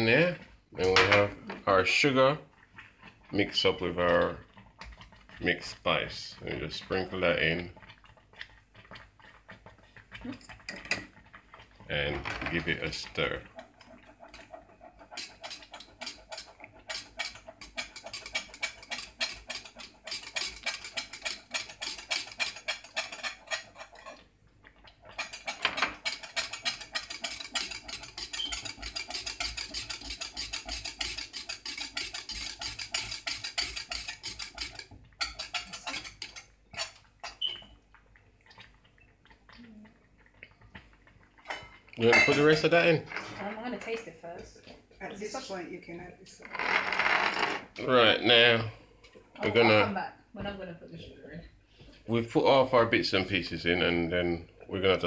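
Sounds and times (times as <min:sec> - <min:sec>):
spoon scraping metal saucepan: 0:08.8 - 0:24.2, 0:25.0 - 0:37.8, 0:41.4 - 0:44.1.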